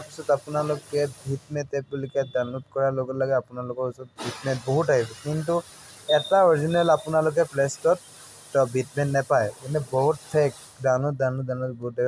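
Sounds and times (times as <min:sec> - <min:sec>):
person talking: 0:00.0 - 0:08.0, 0:08.6 - 0:12.0.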